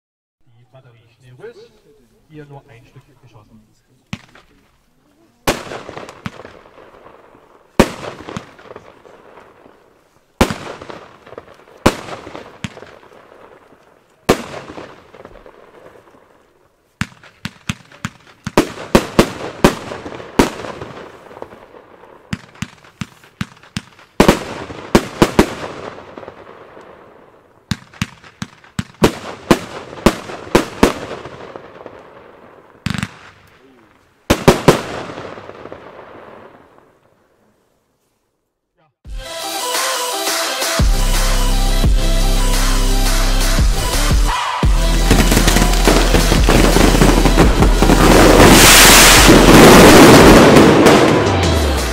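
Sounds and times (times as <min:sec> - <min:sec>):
fireworks aerial shots bursting: 0:04.1 - 0:04.7, 0:05.4 - 0:37.1, 0:39.2 - 0:51.9.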